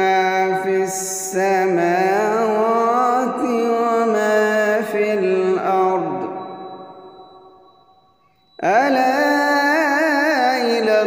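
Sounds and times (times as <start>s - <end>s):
man reciting melodically: 0.0s - 6.9s, 8.6s - 11.0s.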